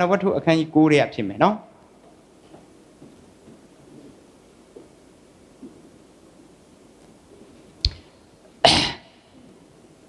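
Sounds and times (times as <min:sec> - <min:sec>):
man sneezing: 0:08.6 - 0:09.2.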